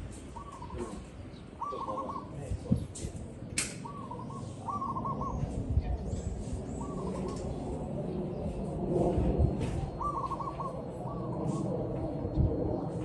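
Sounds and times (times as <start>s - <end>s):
dove cooing: 0.3s - 2.5s, 3.8s - 5.5s, 6.7s - 7.8s, 9.8s - 12.2s
sharp click: 3.0s - 3.8s.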